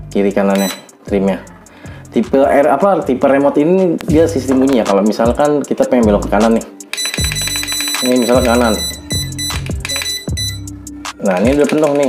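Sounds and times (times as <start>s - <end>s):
background music: 0.0s - 12.0s
short electronic beeps: 0.6s - 0.9s, 7.0s - 10.7s.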